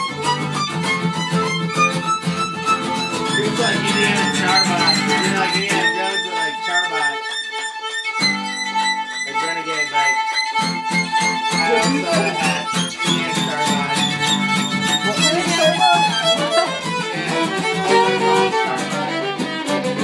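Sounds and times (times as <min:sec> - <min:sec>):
acoustic guitar strumming: 0:00.0 - 0:20.0
fiddle playing bowed melody: 0:00.0 - 0:20.0.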